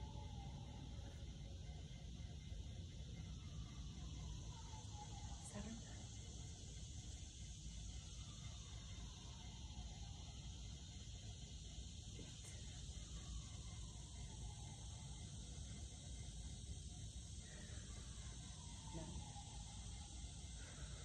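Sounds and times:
high-pitched insect chorus: 0.0 - 21.0.

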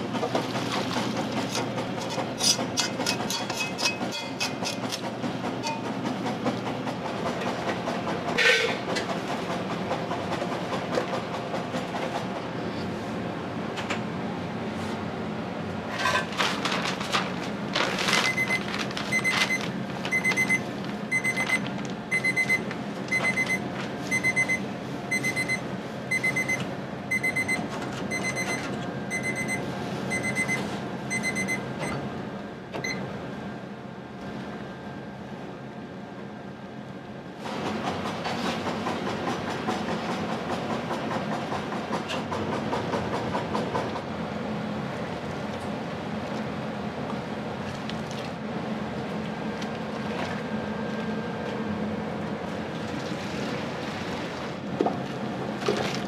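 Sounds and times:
kitchen hum: 0.0 - 9.5
kitchen clatter: 0.7 - 6.0, 15.9 - 18.8
kitchen alarm beeping: 18.2 - 32.0.

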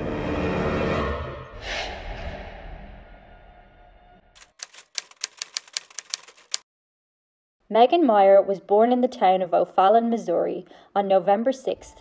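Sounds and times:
typewriter keystroke clacks: 4.4 - 6.6.

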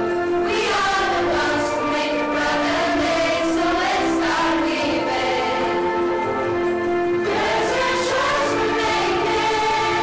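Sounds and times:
vocal group singing together: 0.4 - 6.2, 7.2 - 10.0.

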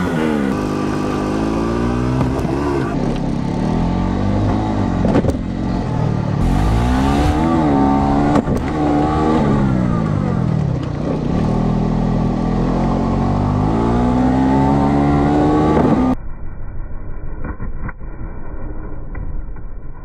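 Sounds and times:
utility vehicle engine revving: 0.0 - 16.2.

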